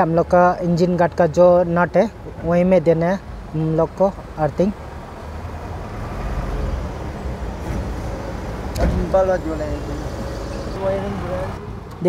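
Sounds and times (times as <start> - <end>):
passing road vehicle rumble: 2.1 - 12.0.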